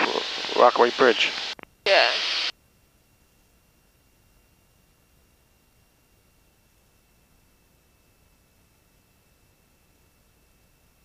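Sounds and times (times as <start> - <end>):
faint steady tone: 0.0 - 11.0.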